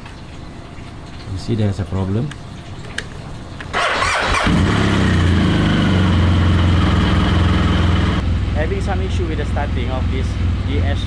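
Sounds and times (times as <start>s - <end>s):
motorcycle starter cranking: 3.7s - 5.4s
motorcycle engine idling: 4.0s - 11.0s.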